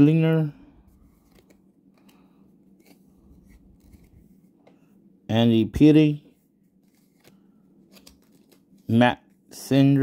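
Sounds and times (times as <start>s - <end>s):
trading cards being handled: 0.9s - 4.8s, 6.5s - 9.4s.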